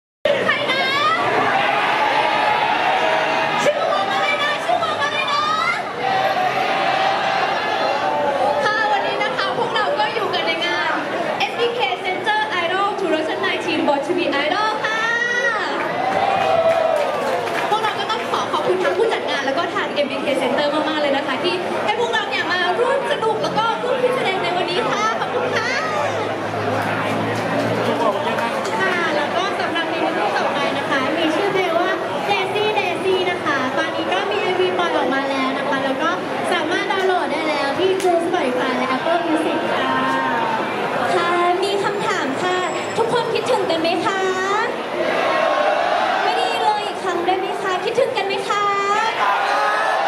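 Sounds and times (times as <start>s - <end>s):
voices chattering in a hall: 0.3s - 50.0s.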